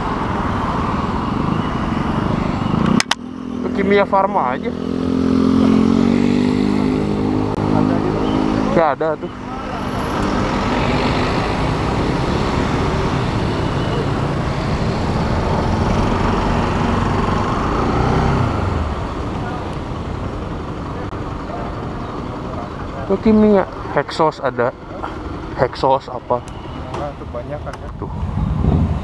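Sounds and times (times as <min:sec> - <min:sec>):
wind rushing over microphone: 0:28.0 - 0:29.0.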